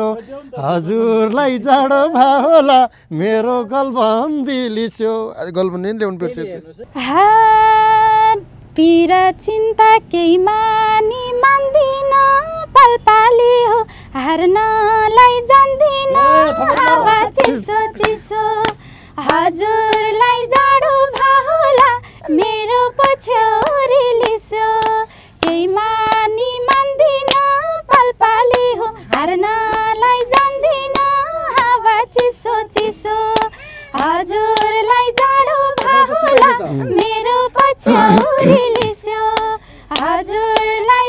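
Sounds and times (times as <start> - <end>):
woman singing unaccompanied: 6.9 - 41.0
hand claps: 16.2 - 40.8.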